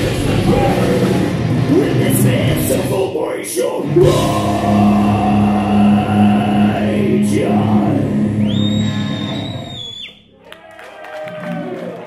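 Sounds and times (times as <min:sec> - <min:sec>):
heavy metal band playing live: 0:00.0 - 0:09.7
crowd cheering and clapping: 0:08.5 - 0:12.0.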